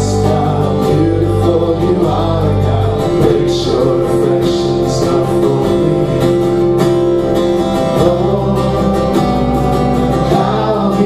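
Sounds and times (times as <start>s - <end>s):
electric bass: 0.0s - 11.0s
electric guitar: 0.0s - 11.0s
strummed acoustic guitar: 0.0s - 11.0s.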